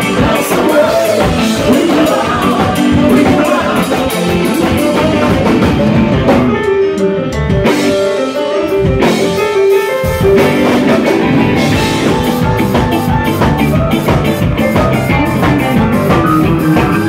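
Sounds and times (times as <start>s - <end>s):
live rock band playing: 0.0s - 17.0s.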